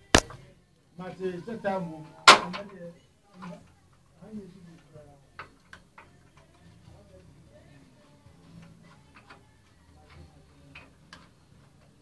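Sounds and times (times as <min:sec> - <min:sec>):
short sharp clicks: 0:00.0 - 0:00.4
faint murmur of voices: 0:00.0 - 0:12.0.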